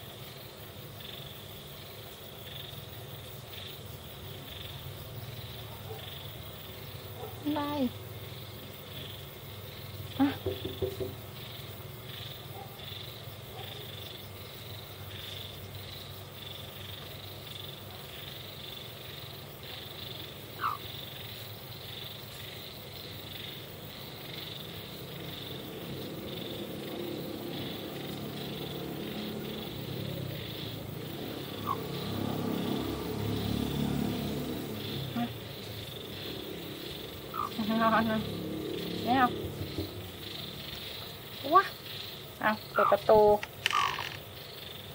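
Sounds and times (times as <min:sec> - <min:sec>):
hen purring trill: 0:20.0 - 0:20.9, 0:24.2 - 0:44.2.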